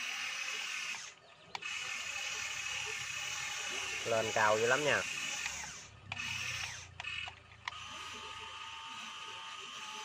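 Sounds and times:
electric motors whirring: 0:00.0 - 0:10.0.

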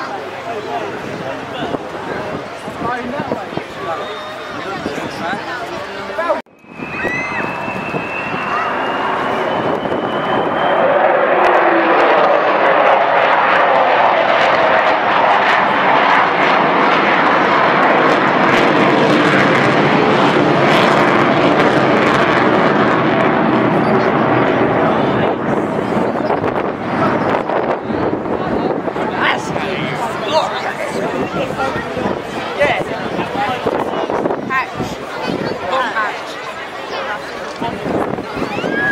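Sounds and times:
jet engines roaring overhead: 0:00.0 - 0:38.9
high whistling tone: 0:06.5 - 0:11.0.

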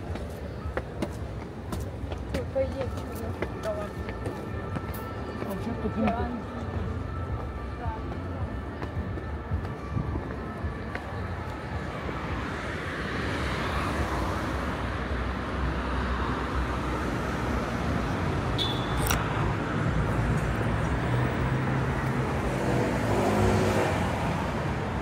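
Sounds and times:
cars passing on street: 0:00.0 - 0:25.0.

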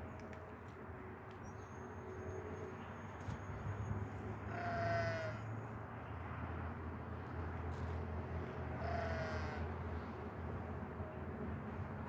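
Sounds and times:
animal call: 0:04.5 - 0:05.4, 0:08.8 - 0:09.7.

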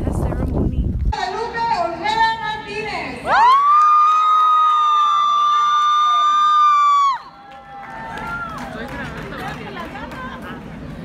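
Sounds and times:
crowd noise: 0:01.2 - 0:11.0
audience high-pitched cheering yell: 0:03.3 - 0:08.9.

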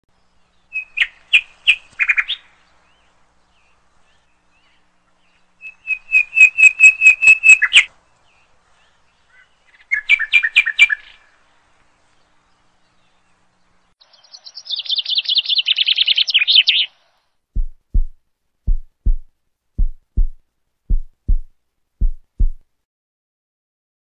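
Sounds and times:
bird chirping rapidly: 0:05.6 - 0:07.9, 0:14.0 - 0:16.9.

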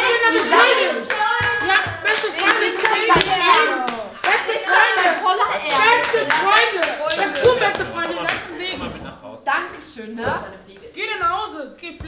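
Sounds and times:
rhythmic hand clapping: 0:00.0 - 0:08.6
young people calling out: 0:00.0 - 0:08.7.

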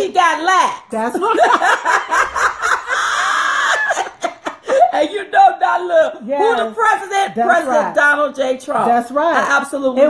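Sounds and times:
women laughing loudly: 0:01.2 - 0:05.2.

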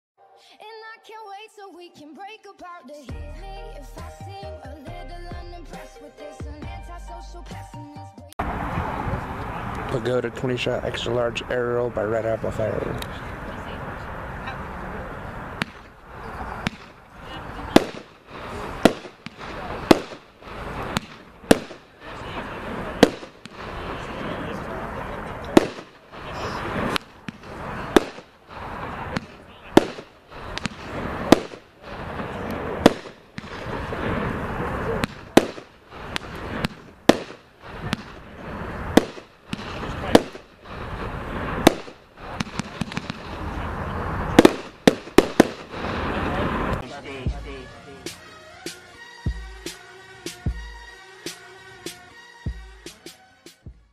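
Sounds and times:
fireworks cake firing bangs: 0:15.4 - 0:48.2.

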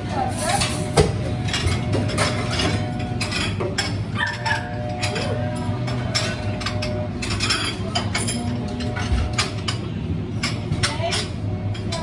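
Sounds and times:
cups and tools clattering: 0:00.0 - 0:12.0
low equipment hum: 0:00.0 - 0:12.0.

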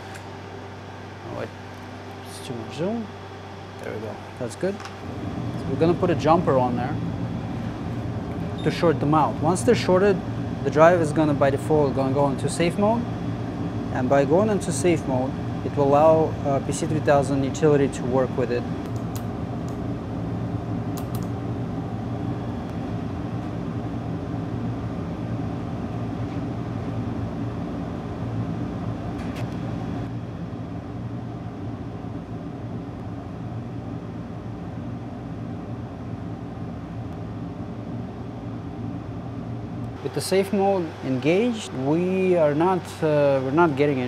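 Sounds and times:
electric fan hum: 0:00.0 - 0:44.0.

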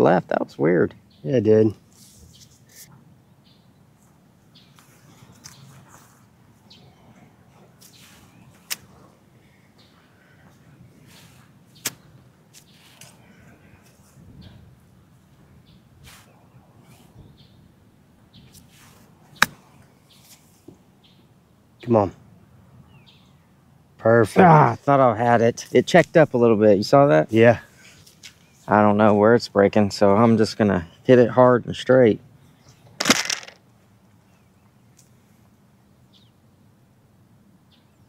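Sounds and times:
faint outdoor background: 0:00.0 - 0:38.0.

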